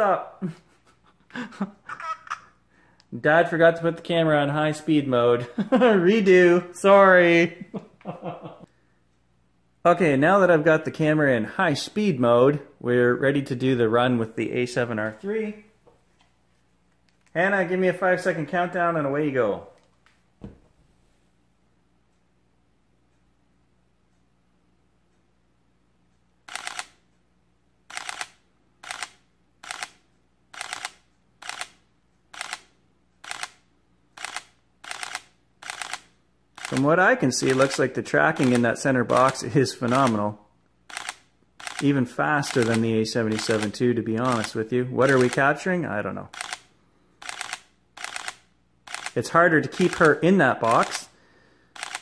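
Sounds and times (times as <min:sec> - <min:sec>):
camera shutter bursts: 0:26.5 - 0:27.0, 0:27.9 - 0:33.6, 0:34.2 - 0:40.2, 0:40.9 - 0:45.5, 0:46.3 - 0:51.1, 0:51.7 - 0:52.0.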